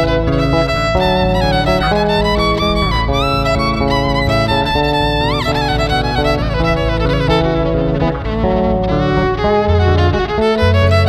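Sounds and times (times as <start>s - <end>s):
bass guitar line: 0.0s - 11.0s
electric violin melody: 0.0s - 11.0s.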